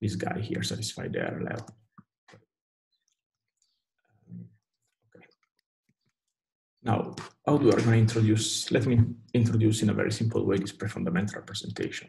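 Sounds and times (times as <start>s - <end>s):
spoken word: 0.0s - 1.6s.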